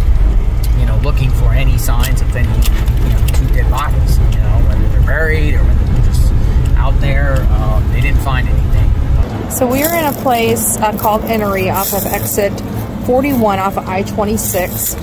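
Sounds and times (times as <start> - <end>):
car cabin road and engine rumble: 0.0 - 15.0
person talking: 0.6 - 15.0.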